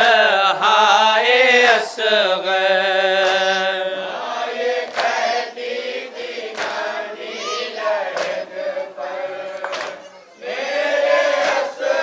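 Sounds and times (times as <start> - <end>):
men chanting a lament: 0.0 - 12.0
hands slapping chests: 3.2 - 3.6, 4.8 - 5.3, 6.4 - 7.0, 8.1 - 8.5, 9.6 - 10.1, 11.4 - 11.7.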